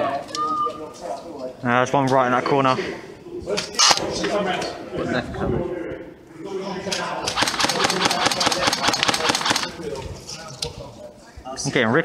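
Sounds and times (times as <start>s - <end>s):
airsoft rifle firing full auto: 7.3s - 9.8s.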